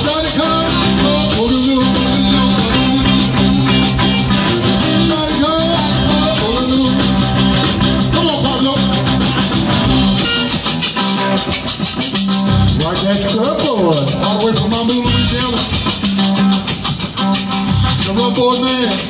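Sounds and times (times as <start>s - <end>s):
accordion: 0.0s - 12.0s
live band playing up-tempo: 0.0s - 19.0s
rubboard scraped rhythmically: 0.0s - 19.0s.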